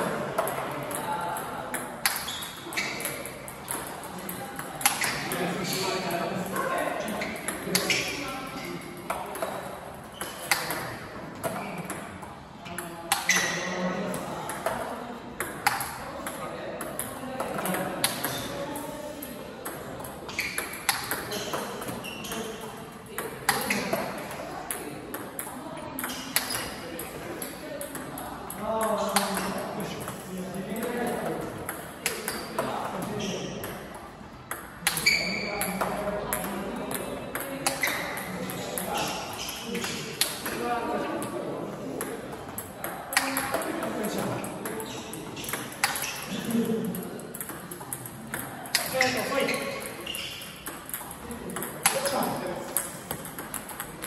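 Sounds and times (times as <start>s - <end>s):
background voices talking: 0.0s - 54.0s
table tennis balls clicking: 0.0s - 54.0s.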